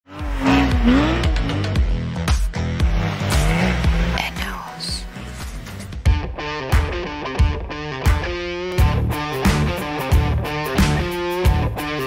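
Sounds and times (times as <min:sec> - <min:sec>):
car engine: 0:00.0 - 0:06.1
music with a beat: 0:00.2 - 0:12.0.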